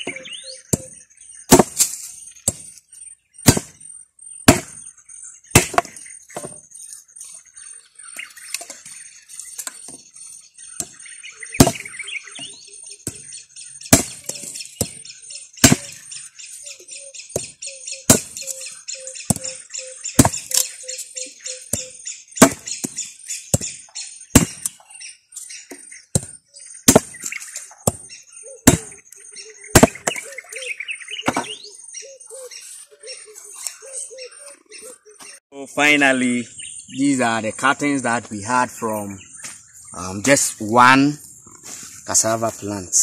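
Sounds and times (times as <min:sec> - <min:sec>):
machete chopping on wooden plank: 0:00.0 - 0:02.8, 0:03.4 - 0:03.9, 0:04.5 - 0:04.9, 0:05.5 - 0:06.7, 0:10.8 - 0:11.0, 0:11.6 - 0:13.3, 0:13.9 - 0:15.0, 0:15.6 - 0:16.0, 0:17.3 - 0:18.5, 0:19.3 - 0:19.6, 0:20.2 - 0:20.8, 0:21.7 - 0:24.8, 0:25.7 - 0:29.0, 0:29.7 - 0:30.3, 0:31.2 - 0:31.6
birds chirping: 0:00.0 - 0:43.0.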